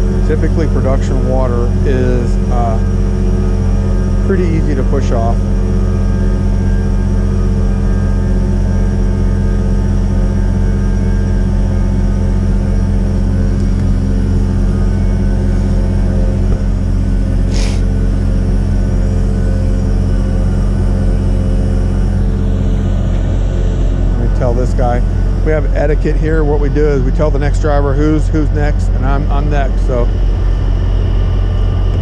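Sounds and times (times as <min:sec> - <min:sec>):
truck engine and pump running: 0:00.0 - 0:32.0.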